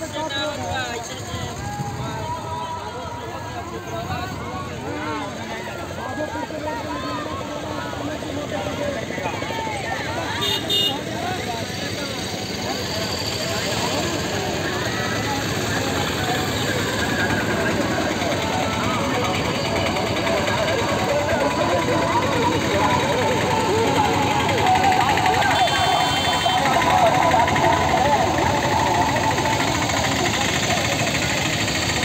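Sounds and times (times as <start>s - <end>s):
auto-rickshaw engines running: 0.0s - 32.0s
voices: 0.0s - 32.0s.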